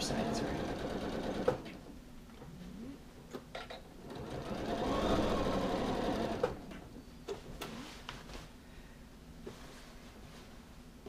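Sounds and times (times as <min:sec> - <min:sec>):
sewing machine stitching: 0:00.1 - 0:01.8, 0:04.0 - 0:06.8.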